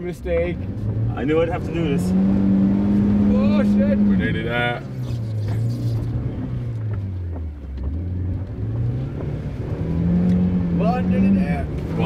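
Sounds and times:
car engine from inside cabin: 0:00.0 - 0:12.0.

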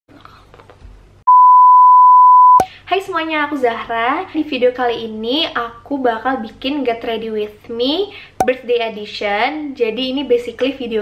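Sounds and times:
loud electronic beep: 0:01.3 - 0:02.7.

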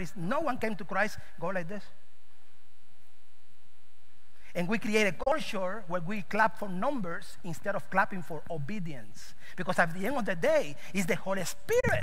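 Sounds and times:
low electrical hum: 0:00.0 - 0:12.0
faint buzz: 0:01.2 - 0:04.6.

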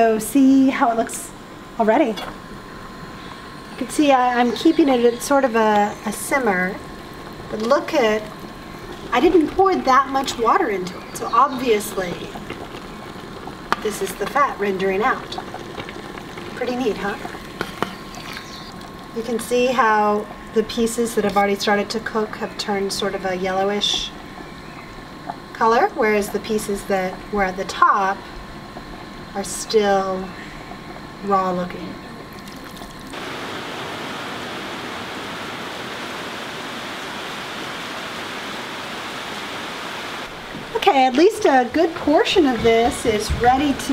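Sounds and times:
fat and water bubbling: 0:04.6 - 0:40.8
heavy rain falling: 0:33.1 - 0:40.8.

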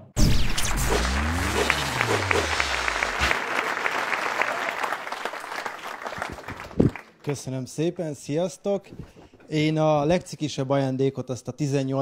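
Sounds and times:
audience clapping: 0:01.0 - 0:07.4.

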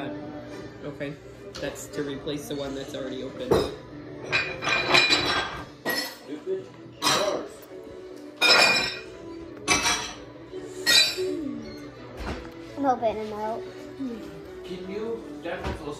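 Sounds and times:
tableware clinking: 0:03.4 - 0:06.4, 0:07.0 - 0:07.5, 0:08.3 - 0:12.4.

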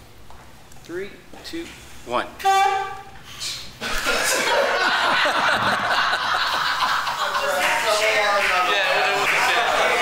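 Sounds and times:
men laughing: 0:03.8 - 0:10.0.

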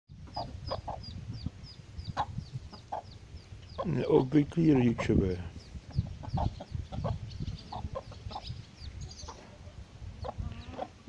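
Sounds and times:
duckling peeping: 0:00.2 - 0:11.0
hen clucking softly: 0:00.2 - 0:11.0.

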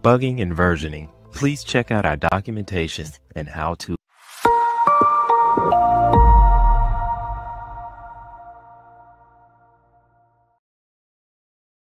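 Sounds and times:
electronic jingle chord: 0:04.5 - 0:09.7.

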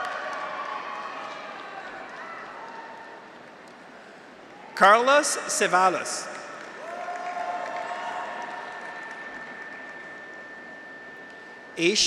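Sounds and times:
audience applause: 0:00.0 - 0:03.0, 0:06.6 - 0:11.0
cheering: 0:00.0 - 0:03.4, 0:06.6 - 0:11.0
held tone: 0:09.2 - 0:12.0.

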